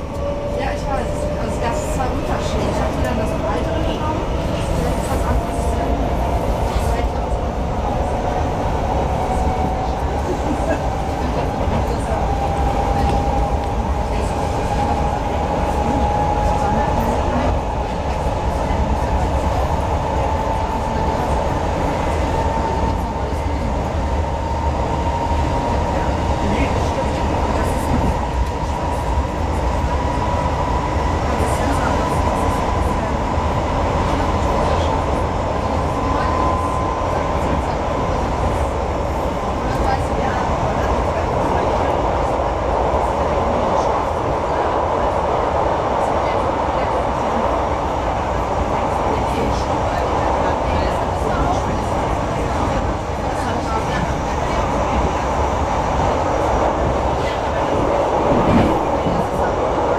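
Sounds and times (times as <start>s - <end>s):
train running and track noise: 0.0s - 59.9s.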